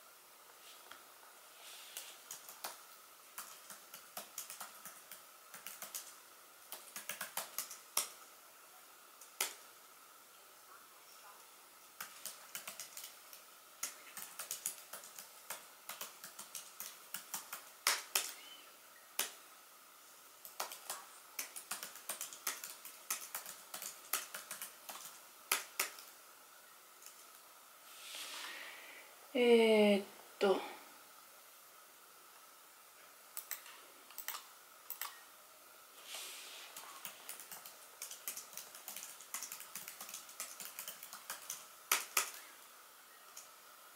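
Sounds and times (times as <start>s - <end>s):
typing on laptop keyboard: 2.0s - 8.2s, 12.0s - 18.4s, 20.4s - 26.1s, 33.4s - 35.2s, 36.7s - 42.4s.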